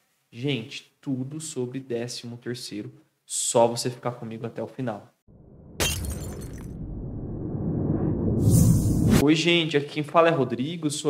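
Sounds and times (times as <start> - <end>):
low rumble: 5.3 - 9.2.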